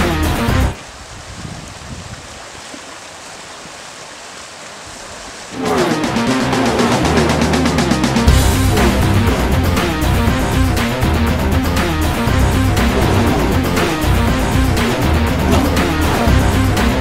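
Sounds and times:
flowing river water: 0.0s - 17.0s
guitar music: 5.6s - 17.0s.

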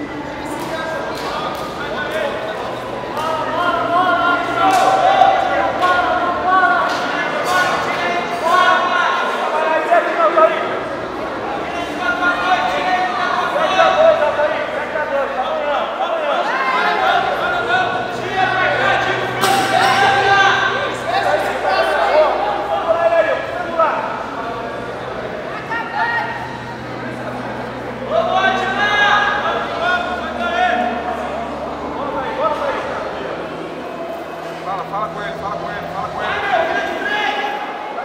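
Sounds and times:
people shouting in echoing hall: 0.0s - 38.0s.

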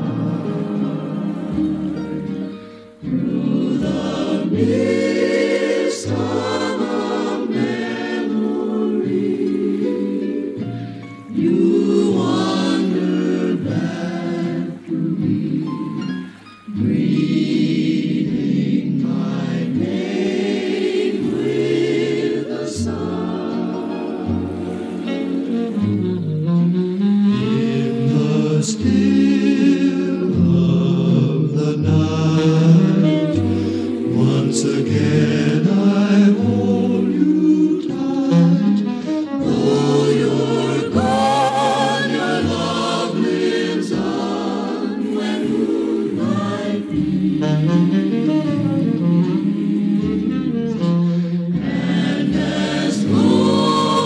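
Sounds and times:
choir singing in harmony: 0.0s - 54.0s
short sibilant hiss: 1.3s - 3.1s.

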